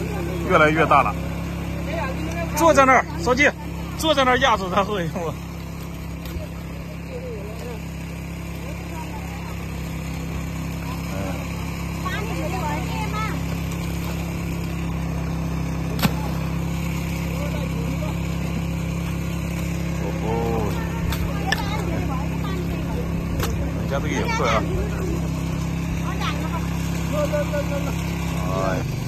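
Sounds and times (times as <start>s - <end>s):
small engine running: 0.0s - 29.0s.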